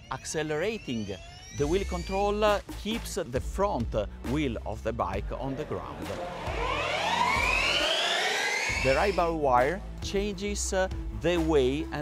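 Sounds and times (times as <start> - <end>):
electric motorbikes whining: 6.0 - 8.9.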